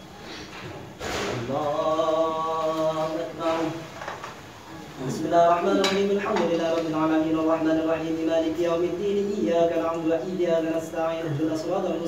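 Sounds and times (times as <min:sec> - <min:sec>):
man chanting: 0:01.4 - 0:03.9, 0:05.0 - 0:12.0.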